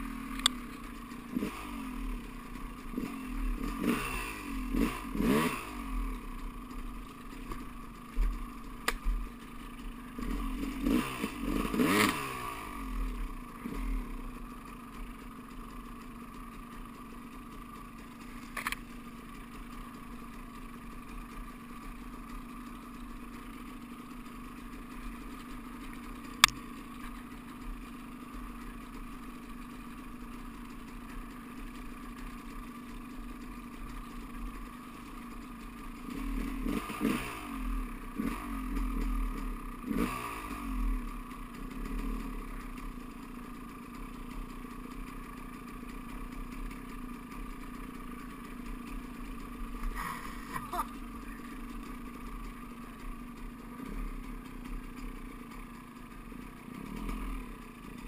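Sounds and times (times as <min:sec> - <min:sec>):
dirt bike engine revving: 0:00.0 - 0:14.9, 0:36.0 - 0:43.0, 0:48.1 - 0:58.0.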